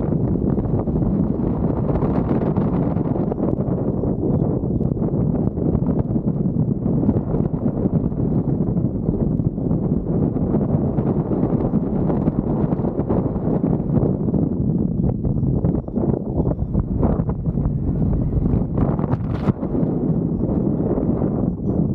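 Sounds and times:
wind buffeting microphone: 0.0s - 21.9s.

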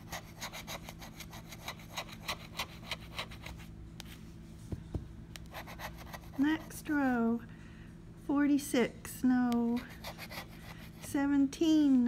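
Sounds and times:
metal tool scraping scratch ticket: 0.0s - 3.6s, 9.8s - 11.2s.

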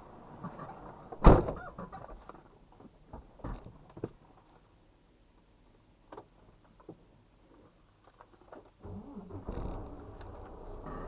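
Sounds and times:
diesel truck engine starting: 8.8s - 11.0s.

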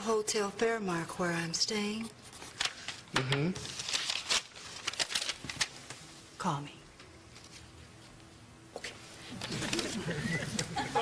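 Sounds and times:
paper rustling: 2.0s - 6.0s.

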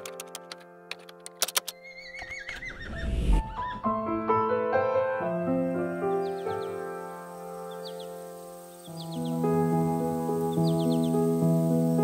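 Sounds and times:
soft piano music: 0.0s - 2.2s, 3.3s - 12.0s
horse whinnying: 1.8s - 3.8s.

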